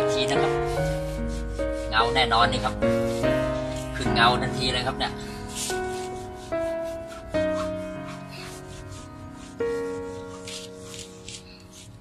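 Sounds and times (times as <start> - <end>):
cloth rubbing rubber tyre: 0.0 - 12.0
music with slow held notes: 0.0 - 12.0.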